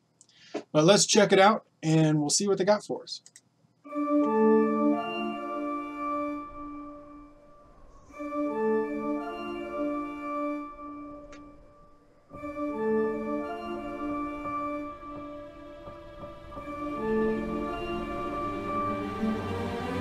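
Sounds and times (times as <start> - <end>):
held orchestral chords: 3.9 - 20.0.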